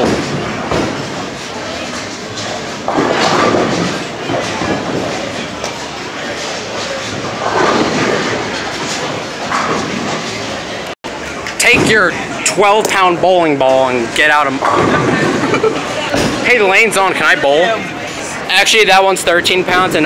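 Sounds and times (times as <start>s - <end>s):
rolling rumble of bowling balls: 0.0s - 20.0s
people talking: 10.5s - 20.0s.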